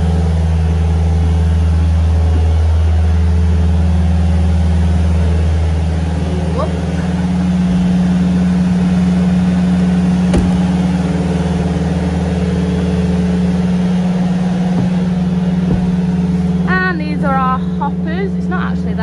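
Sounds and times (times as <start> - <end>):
milk pump motor hum: 0.0 - 19.0.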